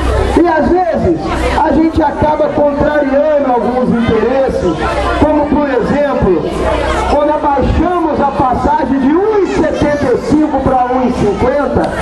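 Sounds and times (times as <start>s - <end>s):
man speaking into a microphone: 0.2s - 6.5s, 7.1s - 12.0s.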